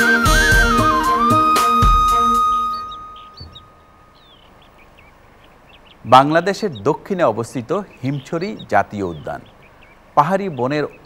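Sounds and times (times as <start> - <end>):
flute note: 0.0 - 3.9
bird chirps and calls: 0.3 - 11.0.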